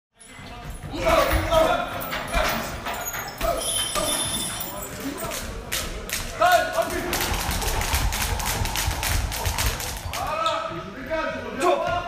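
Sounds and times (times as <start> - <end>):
voices in room: 0.2 - 12.0.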